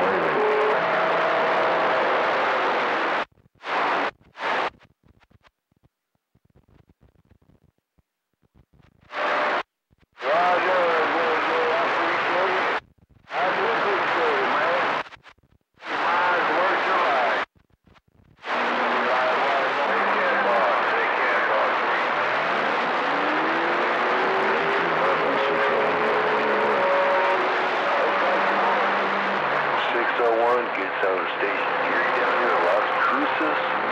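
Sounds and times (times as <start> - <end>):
radio static hiss: 0.0 - 5.5, 8.6 - 33.9
faint unintelligible voices: 10.2 - 15.0, 18.4 - 22.3, 24.8 - 33.9.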